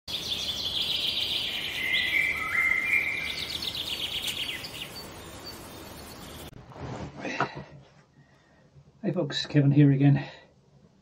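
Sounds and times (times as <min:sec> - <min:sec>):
high whistling tones: 0:01.8 - 0:03.5.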